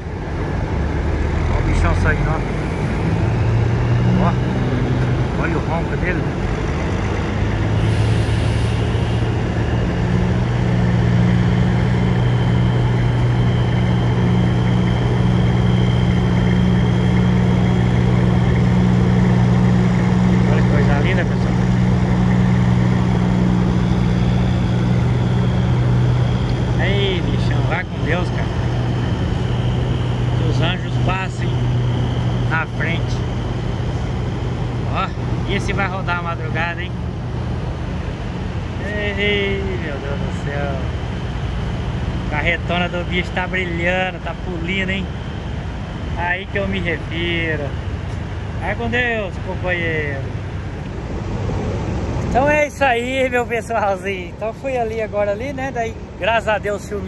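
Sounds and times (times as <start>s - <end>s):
truck diesel engine rumbling: 0.0s - 57.0s.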